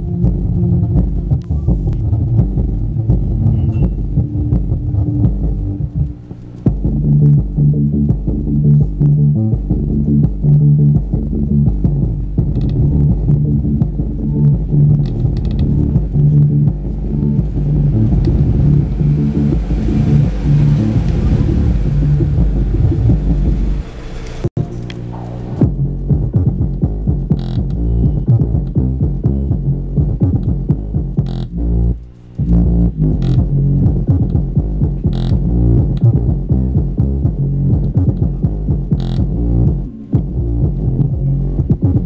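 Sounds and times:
bass-heavy electronic music: 0:00.0 - 0:42.0
hissing build-up: 0:14.9 - 0:24.5.

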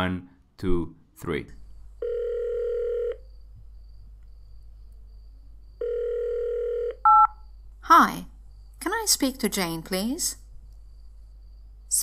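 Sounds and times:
telephone ringback tone: 0:02.0 - 0:03.2, 0:05.8 - 0:07.3.

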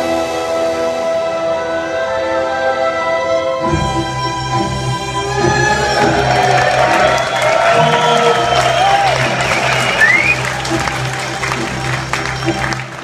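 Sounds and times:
rock band and string orchestra: 0:00.0 - 0:13.0
audience applauding and cheering: 0:05.2 - 0:13.0.

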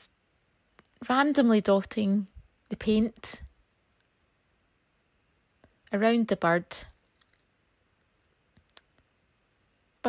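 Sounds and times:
faint clicks: 0:03.9 - 0:04.2, 0:08.6 - 0:09.1.

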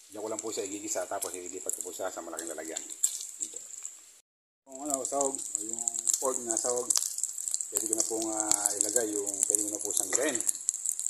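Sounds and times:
meat sizzling in a pan: 0:00.0 - 0:11.0
person talking: 0:04.7 - 0:07.0, 0:07.7 - 0:10.5.

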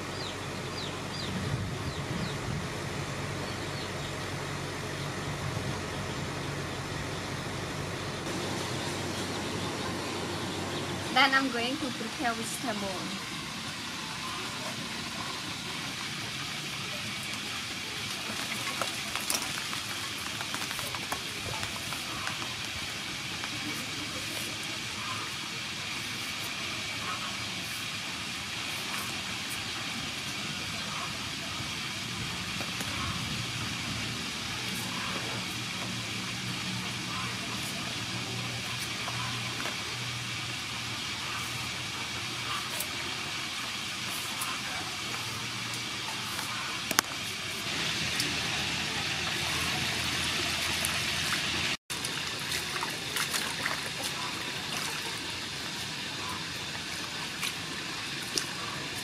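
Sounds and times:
low hum: 0:00.0 - 0:19.1
outdoor hiss: 0:06.4 - 0:59.0.

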